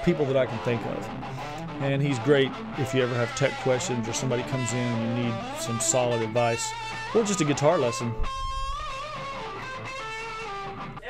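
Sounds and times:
electric guitar lead line: 0.0s - 11.0s.

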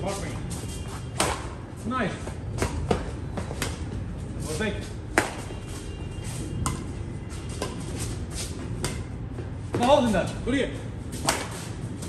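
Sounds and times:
rackets hitting shuttlecock: 1.2s - 1.6s, 5.1s - 5.5s, 6.6s - 7.9s, 8.7s - 9.9s, 11.2s - 11.8s.

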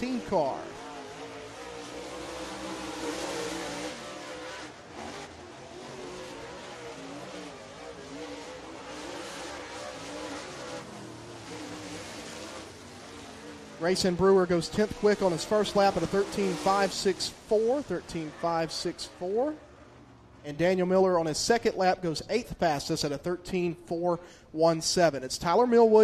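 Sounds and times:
race car engines at speed: 0.0s - 26.0s.

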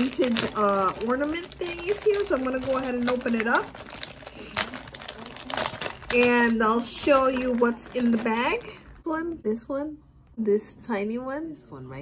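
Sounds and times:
bag crinkling: 0.0s - 9.1s.

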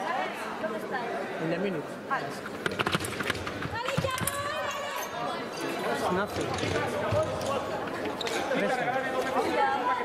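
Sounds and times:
indistinct chatter echoing: 3.4s - 10.0s.

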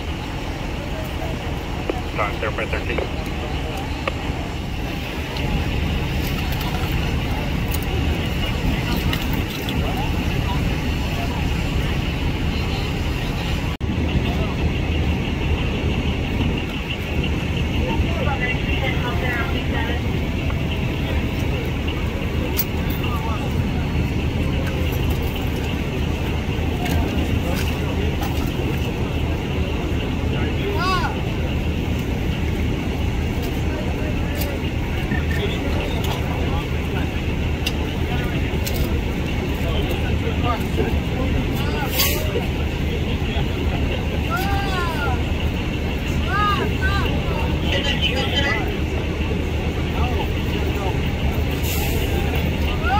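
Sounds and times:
engines running: 0.0s - 52.9s
voices talking: 0.0s - 52.9s.

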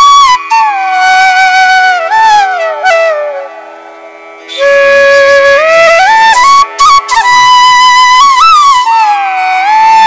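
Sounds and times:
flute melody gliding downward: 0.0s - 3.8s, 4.4s - 10.0s.

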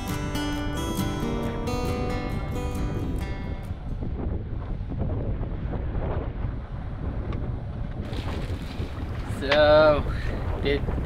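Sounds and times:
wind buffeting microphone: 0.0s - 11.0s
water washing along hull: 4.1s - 11.0s.

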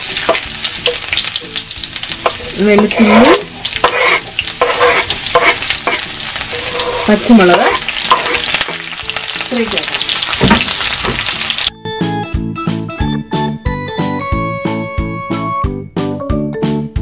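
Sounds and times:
vegetables sizzling in hot oil: 0.0s - 11.7s
spatula scraping a pan: 2.2s - 9.4s
keyboard music: 11.7s - 17.0s.

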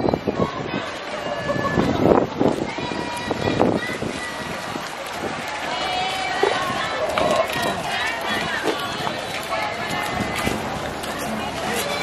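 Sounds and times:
people talking: 0.0s - 12.0s
footsteps on walkway: 2.1s - 12.0s.

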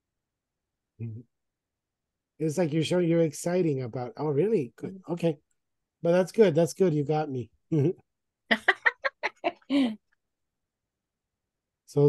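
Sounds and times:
person laughing: 7.7s - 10.0s.

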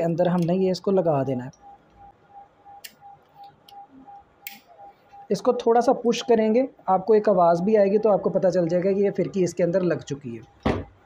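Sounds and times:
faint ticking beep: 0.4s - 9.3s.

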